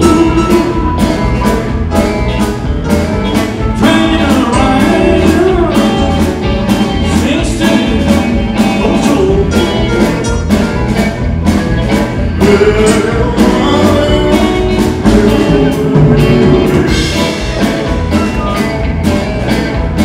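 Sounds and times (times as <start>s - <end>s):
rock band playing: 0.0s - 20.0s.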